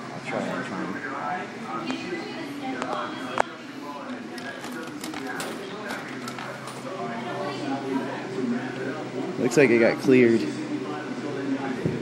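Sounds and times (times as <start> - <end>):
background voices talking: 0.1 - 12.0.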